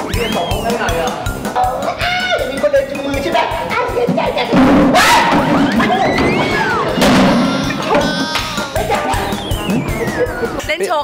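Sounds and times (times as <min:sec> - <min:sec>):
background music: 0:00.0 - 0:11.0
comedy thud: 0:04.5 - 0:09.9.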